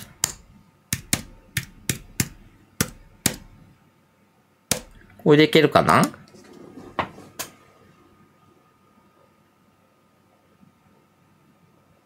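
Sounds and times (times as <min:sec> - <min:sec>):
keyboard keys tapped: 0:00.0 - 0:03.5.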